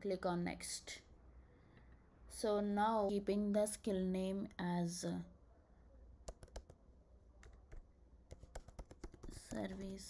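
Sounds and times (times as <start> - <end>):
keyboard key clicks: 6.3 - 6.8, 7.4 - 9.7.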